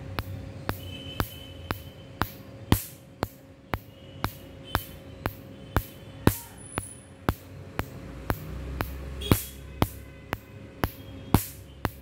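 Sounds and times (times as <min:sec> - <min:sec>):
faint machine hum: 0:00.0 - 0:12.0
laser firing sharp snaps: 0:00.1 - 0:12.0.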